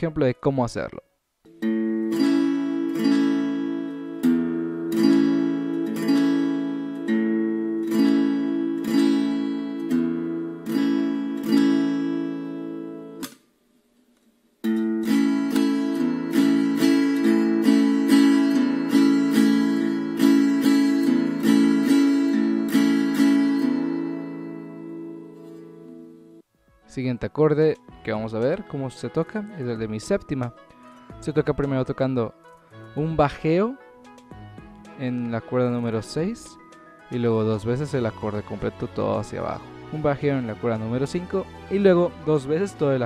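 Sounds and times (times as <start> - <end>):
acoustic guitar strumming: 1.4 - 13.4, 14.6 - 26.5.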